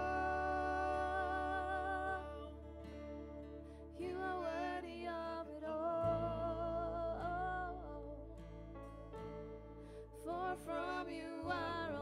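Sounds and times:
person singing: 0.0s - 8.5s, 10.2s - 12.0s
acoustic guitar: 0.0s - 12.0s
sustained keyboard chords: 0.0s - 12.0s.

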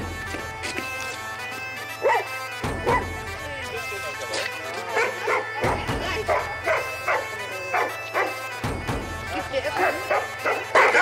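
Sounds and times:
droning background music: 0.0s - 11.0s
dog barking: 2.0s - 3.1s, 5.0s - 5.7s, 6.3s - 8.4s, 10.1s - 11.0s.

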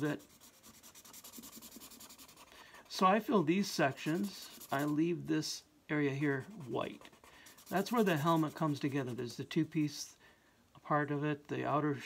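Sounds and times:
marker scratching on paper: 0.0s - 3.0s, 3.9s - 5.0s, 6.4s - 9.2s.

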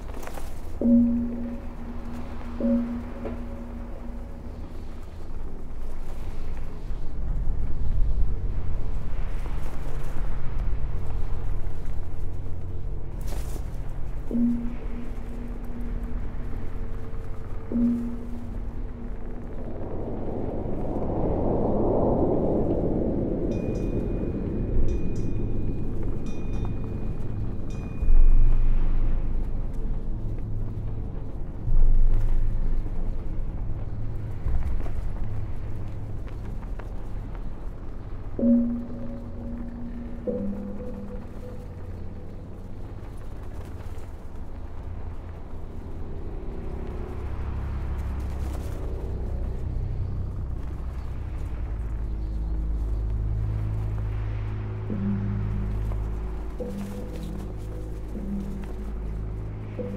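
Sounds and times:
deep rumbling low drone: 0.0s - 59.9s
faint high pulsing tone: 0.0s - 59.9s.

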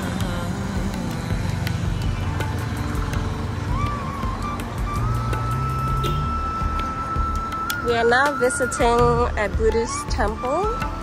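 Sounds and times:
background music: 0.0s - 11.0s
road traffic: 0.0s - 11.0s.

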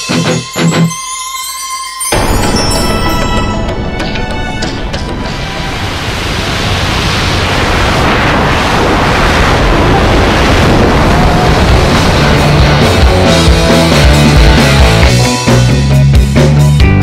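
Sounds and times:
rushing wind noise: 2.2s - 15.0s.

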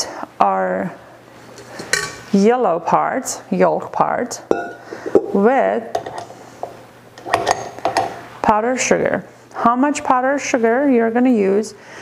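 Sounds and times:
metal bowl and utensils clinking: 4.5s - 5.3s.

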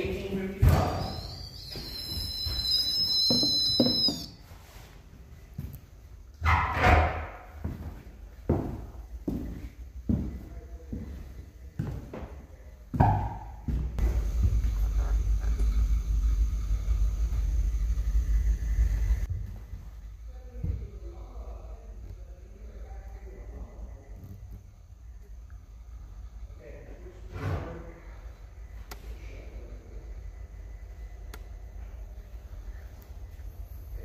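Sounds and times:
high shrill tone: 0.6s - 4.4s
footsteps on wooden stairs: 7.6s - 15.0s
steady low rumble: 14.0s - 27.0s.

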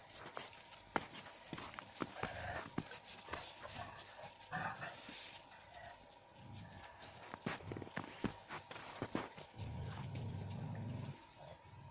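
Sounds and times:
crunchy steps on snow: 0.0s - 11.2s.

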